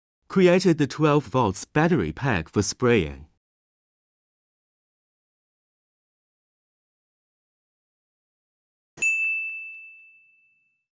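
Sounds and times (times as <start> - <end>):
bright ding sound effect: 9.0 - 10.8.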